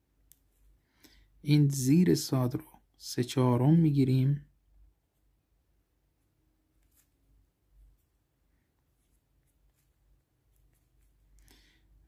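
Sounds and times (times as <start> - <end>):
reed pen scratching on paper: 8.9 - 11.4.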